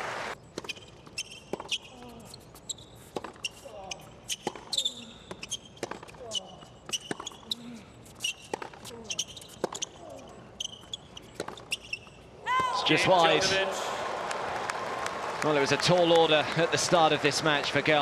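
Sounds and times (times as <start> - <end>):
sneakers squeaking on court: 0.4 - 12.3
racket striking tennis ball: 0.5 - 2.2, 3.1 - 3.6, 4.3 - 6.2, 6.8 - 7.4, 8.1 - 9.9, 11.2 - 11.7
tennis ball bouncing: 0.5 - 10.0, 10.7 - 12.7.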